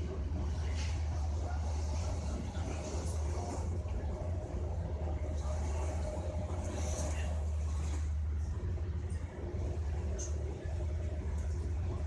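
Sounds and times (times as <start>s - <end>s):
train rumble inside carriage: 0.0s - 12.0s.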